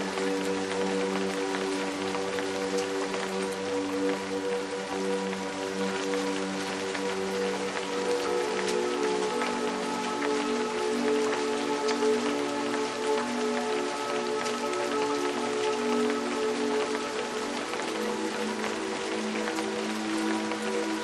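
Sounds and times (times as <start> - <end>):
ambient music of held chords: 0.0 - 21.0
steady rain: 0.0 - 21.0.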